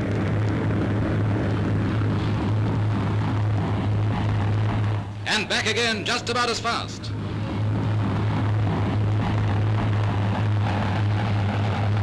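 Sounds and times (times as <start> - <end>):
constant low hum: 0.0 - 12.0
film soundtrack hiss: 0.0 - 12.0
speed boat engine droning: 0.0 - 12.0.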